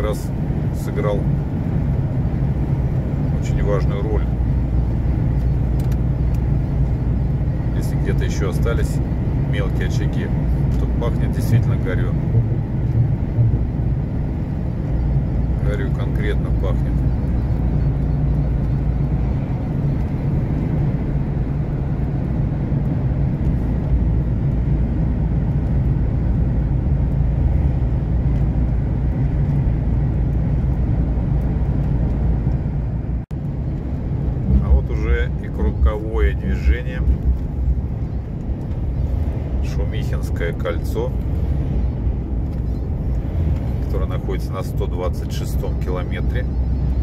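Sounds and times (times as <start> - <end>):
truck engine and tyres droning: 0.0 - 47.0.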